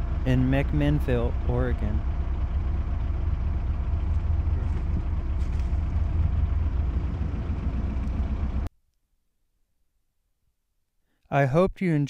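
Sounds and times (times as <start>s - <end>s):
low rumble: 0.0s - 8.7s.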